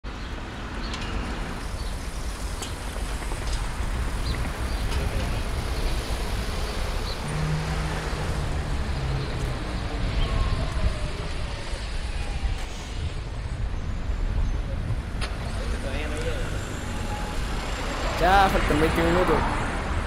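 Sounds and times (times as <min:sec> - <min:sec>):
road traffic rumble: 0:00.1 - 0:20.0.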